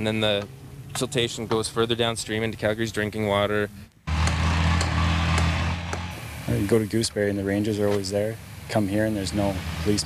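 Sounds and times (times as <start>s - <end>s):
low engine drone: 4.1s - 7.2s, 8.4s - 10.0s.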